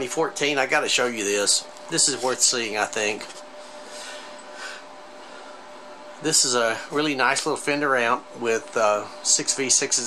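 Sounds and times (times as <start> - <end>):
faint steady hum tone: 0.0 - 10.0.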